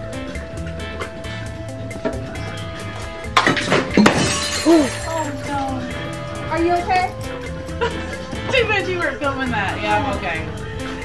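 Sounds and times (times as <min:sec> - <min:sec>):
background music with steady beat: 0:00.0 - 0:11.0
glass shattering: 0:03.3 - 0:05.7.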